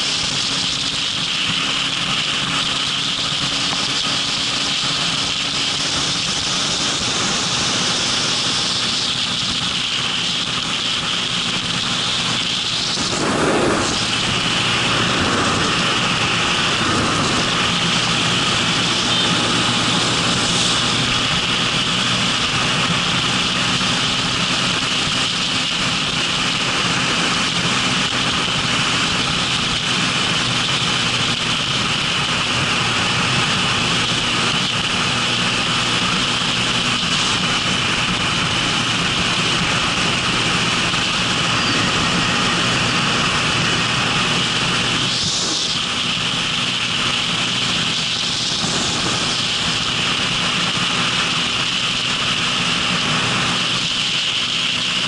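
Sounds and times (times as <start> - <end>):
motorcycle engine cruising: 0.0 - 55.0
wind and road noise: 0.0 - 55.0.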